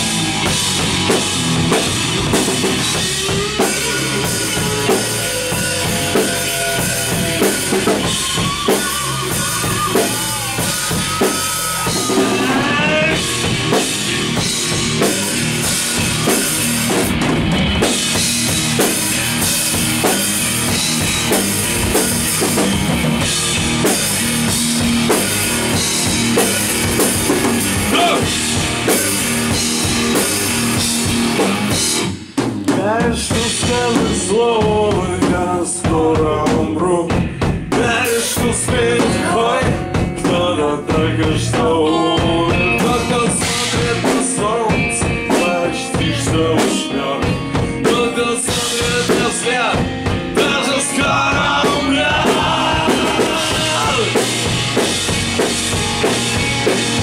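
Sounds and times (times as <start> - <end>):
rock band playing: 0.0 - 57.0.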